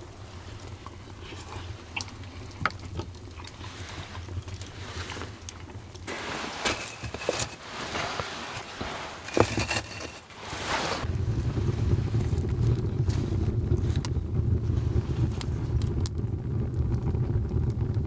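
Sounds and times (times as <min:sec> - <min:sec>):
embers and wood handled: 0:00.0 - 0:15.5
fire crackles: 0:00.0 - 0:18.0
wood fire rumbling: 0:00.0 - 0:18.0.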